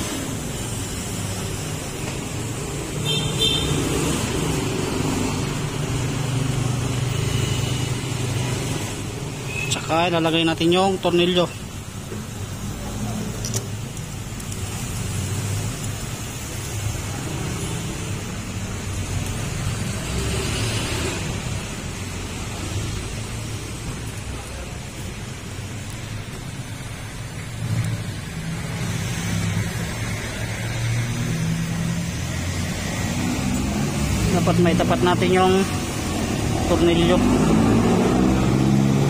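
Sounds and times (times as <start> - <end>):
hiss: 0.0 - 9.7, 11.5 - 34.3.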